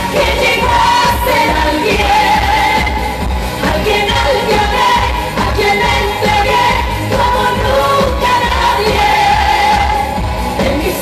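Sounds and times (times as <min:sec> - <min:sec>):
full band with strong bass: 0:00.0 - 0:11.0
woman singing: 0:00.0 - 0:11.0.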